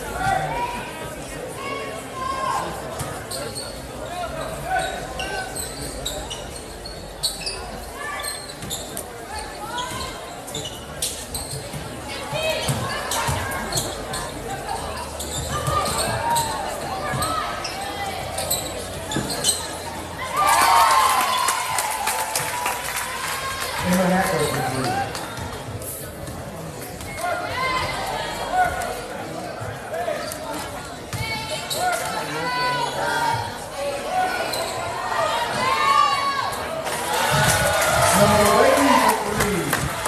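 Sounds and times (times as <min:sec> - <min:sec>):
voices of players and spectators: 0:00.0 - 0:40.0
shoe squeaks: 0:03.1 - 0:11.8, 0:12.6 - 0:20.0, 0:30.2 - 0:32.0, 0:34.3 - 0:35.1
crowd cheering and shouting: 0:20.2 - 0:25.2, 0:32.2 - 0:40.0.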